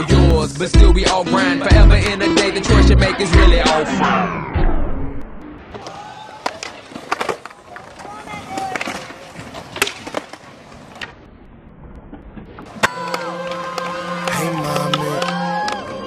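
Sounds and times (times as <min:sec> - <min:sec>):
music: 0:00.0 - 0:04.1, 0:13.0 - 0:16.0
skateboard wheels rolling: 0:05.7 - 0:16.0
skateboard clacking and slapping: 0:05.8 - 0:11.1, 0:12.6 - 0:16.0.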